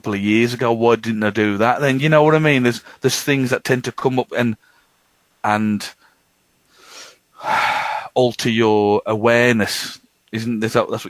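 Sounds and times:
person breathing: 0:02.8 - 0:03.0, 0:04.6 - 0:05.0, 0:06.0 - 0:08.2.

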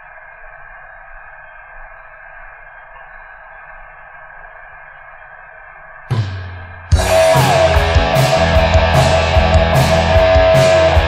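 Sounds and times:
radio-like static hiss: 0:00.0 - 0:11.0.

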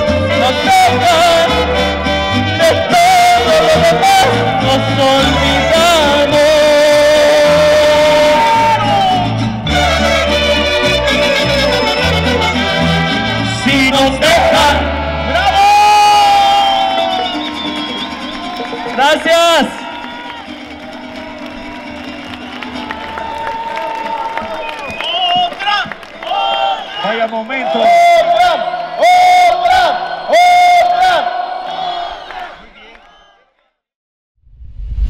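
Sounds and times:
plucked bass line: 0:00.0 - 0:15.6
man singing with vibrato: 0:00.0 - 0:17.4
mariachi band playing: 0:00.0 - 0:28.4
audience cheering: 0:01.1 - 0:12.4, 0:14.2 - 0:33.5.

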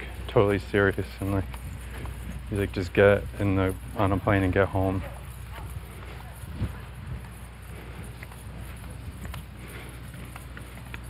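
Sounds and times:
footsteps on dirt road: 0:00.0 - 0:11.0.

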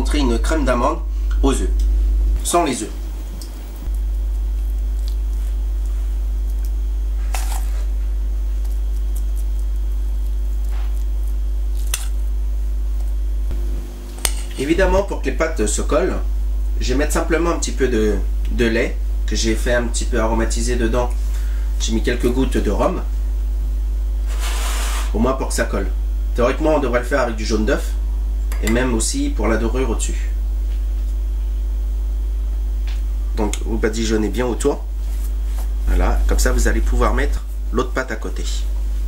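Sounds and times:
low electrical hum: 0:00.0 - 0:39.0.

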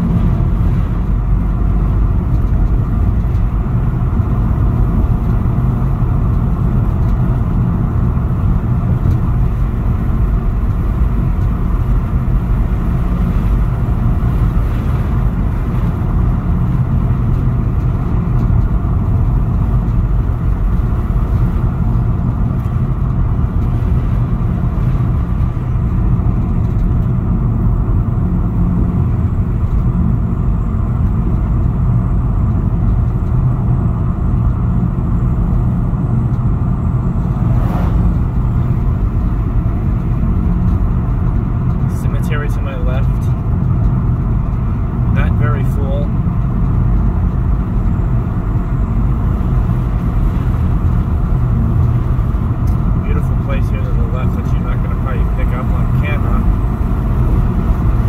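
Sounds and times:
tyres rumbling on pavement: 0:00.0 - 0:58.0.

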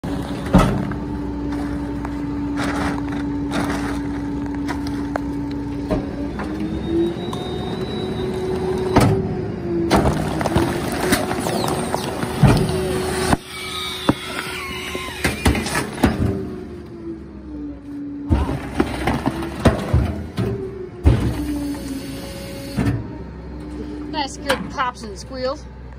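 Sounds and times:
hydraulic pump whine: 0:00.8 - 0:18.7, 0:20.3 - 0:24.0
trash bags popping and squealing: 0:09.9 - 0:16.4.

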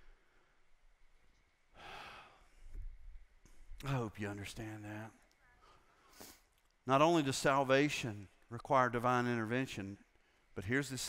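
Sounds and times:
man sighing: 0:01.8 - 0:02.5.

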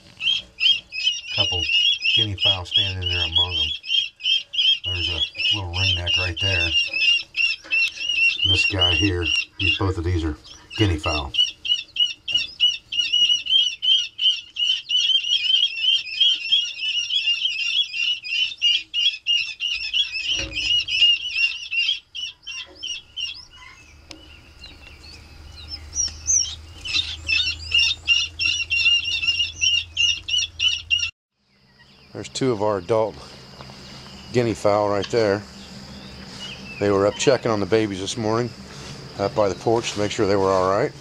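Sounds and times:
chicks peeping: 0:00.0 - 0:41.0.

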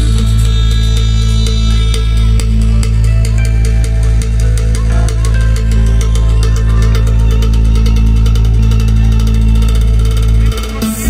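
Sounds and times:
fast ticking beat: 0:00.0 - 0:11.0
heavy sustained bass drone: 0:00.0 - 0:11.0.

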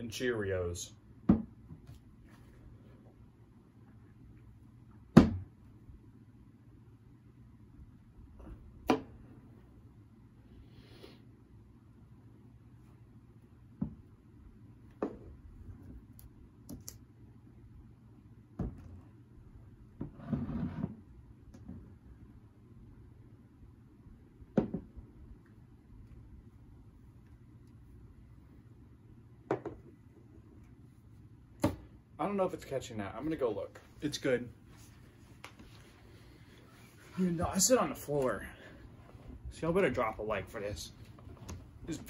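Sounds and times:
glass mug scraping across table: 0:20.0 - 0:21.0.

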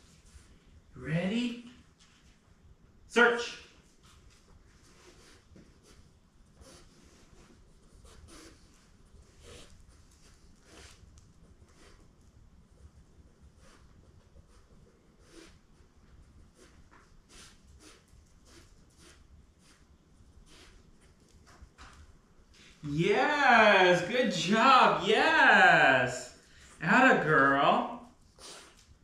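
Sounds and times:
puppy sniffing: 0:16.5 - 0:21.2.

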